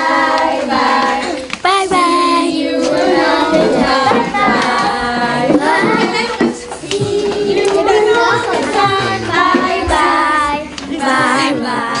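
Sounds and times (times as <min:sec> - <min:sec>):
young children singing: 0:00.0 - 0:12.0.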